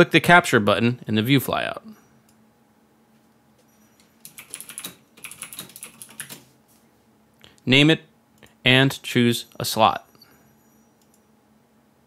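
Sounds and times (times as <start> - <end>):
typing on computer keyboard: 4.0 - 6.5.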